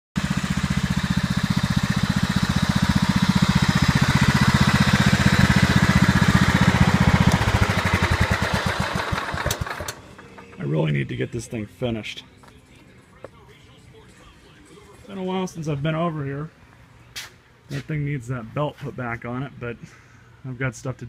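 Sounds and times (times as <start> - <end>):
lawn tractor engine running: 0.2 - 10.8.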